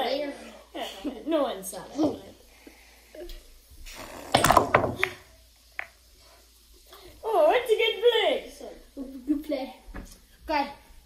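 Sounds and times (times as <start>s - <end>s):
pool balls clacking: 4.1s - 5.9s.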